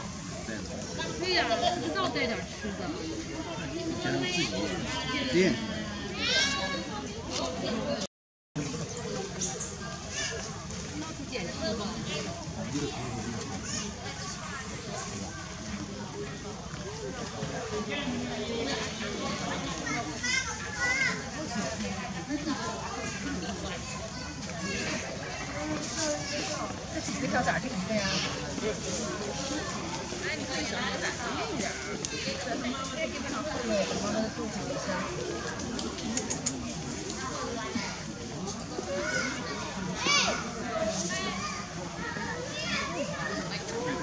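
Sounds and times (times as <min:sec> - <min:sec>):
murmur of voices: 0:00.0 - 0:44.0.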